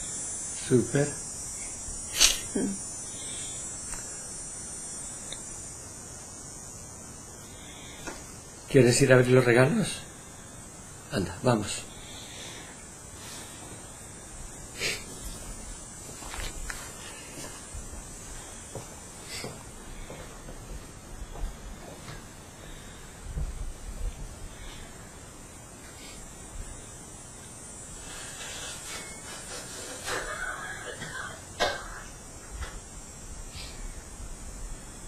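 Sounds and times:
room hiss: 0.0s - 35.0s
soft rustling and rubbing: 15.1s - 18.0s.

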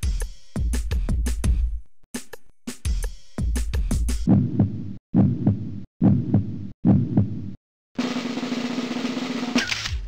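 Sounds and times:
heavy low thuds: 4.3s - 7.6s.

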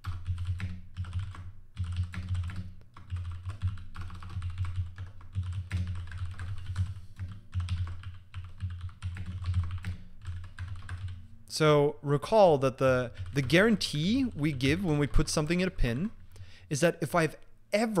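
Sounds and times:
computer keyboard typing: 0.0s - 11.2s, 13.0s - 15.3s.

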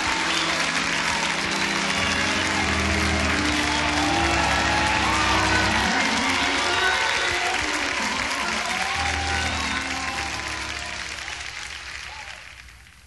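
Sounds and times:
band playing: 0.0s - 12.2s
audience applauding: 0.0s - 13.0s.

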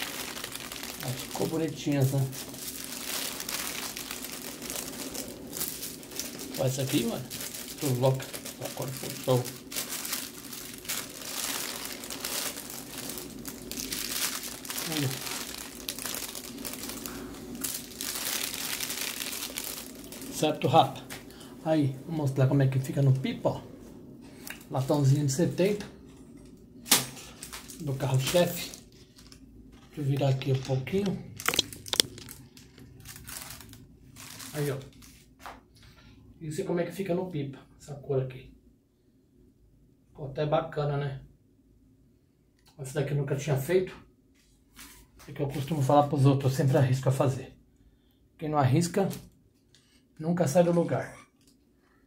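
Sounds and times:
paper rustling and crinkling: 0.0s - 21.3s, 26.9s - 35.6s, 44.4s - 45.9s.

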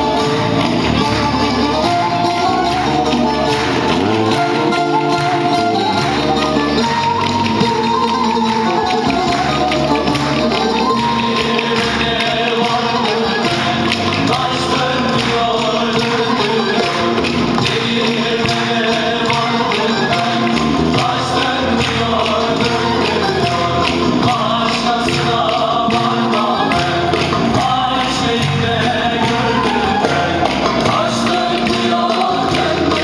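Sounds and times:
folk dance tune on lutes: 0.0s - 33.0s.

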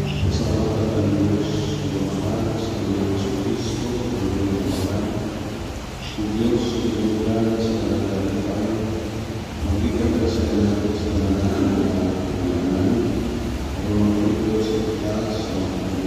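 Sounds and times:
person's voice in a church: 0.0s - 16.0s.

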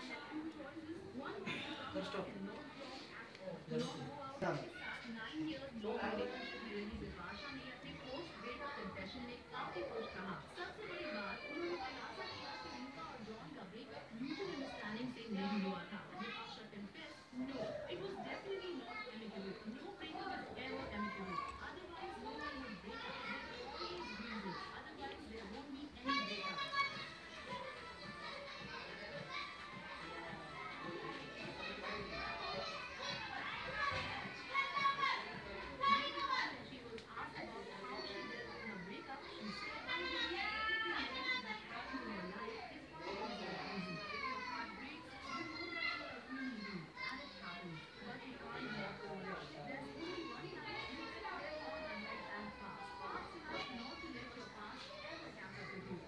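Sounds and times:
children talking and playing: 0.0s - 56.0s.

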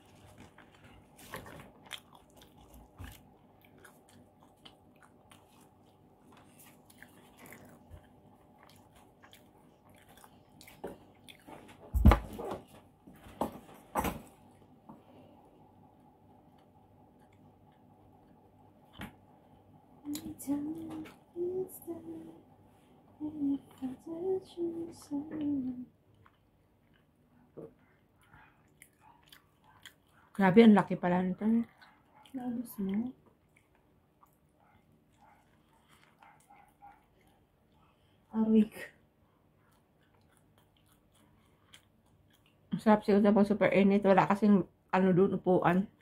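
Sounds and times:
chewing pizza: 0.0s - 12.6s, 16.4s - 20.2s, 24.6s - 43.0s.

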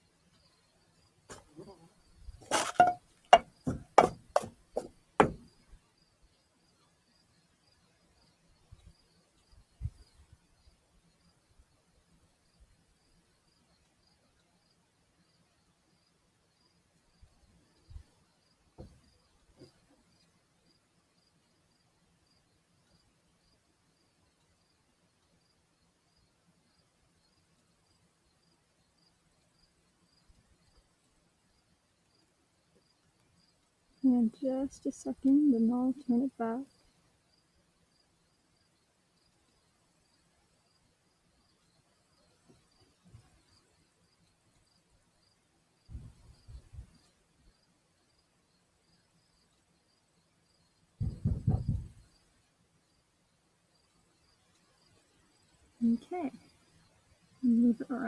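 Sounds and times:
faint high insect chirp: 0.0s - 58.0s
plastic cups knocking on table: 2.5s - 5.4s.

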